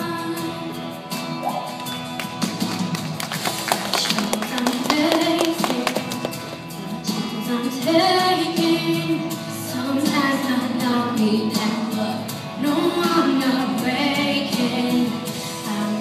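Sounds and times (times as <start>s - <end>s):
young woman singing: 0.0s - 0.8s, 4.0s - 6.2s, 6.8s - 16.0s
instrumental backing track: 0.0s - 16.0s.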